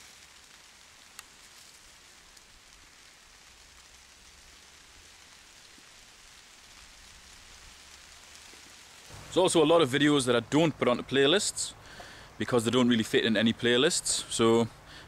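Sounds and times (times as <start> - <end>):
faint steady hiss: 0.0 - 15.0.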